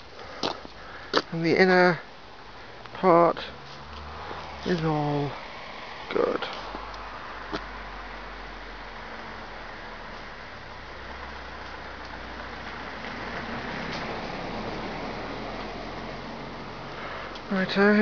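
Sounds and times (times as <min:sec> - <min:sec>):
vehicle engine and tyre noise: 0:00.0 - 0:18.0.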